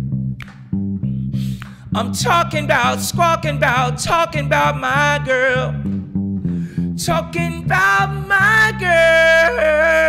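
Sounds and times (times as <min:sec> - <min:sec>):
electric bass low note: 0:00.0 - 0:10.0.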